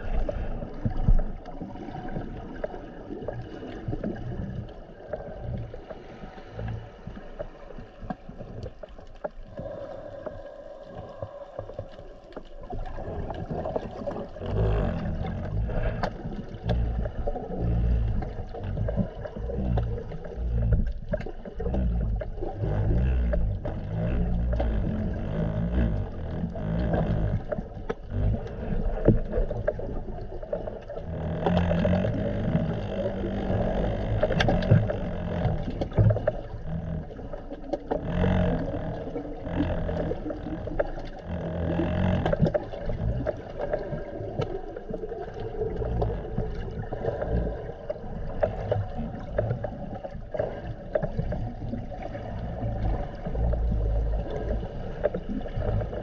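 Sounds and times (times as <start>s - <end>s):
muffled underwater rumble: 0.0s - 56.0s.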